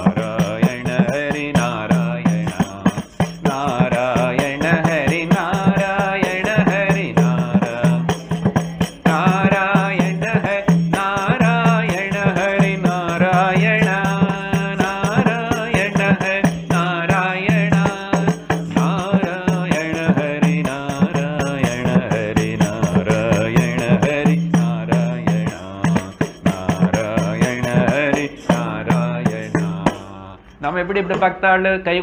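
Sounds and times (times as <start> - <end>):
frame drum beats: 0.0 - 30.1
man singing a chant: 0.0 - 32.0.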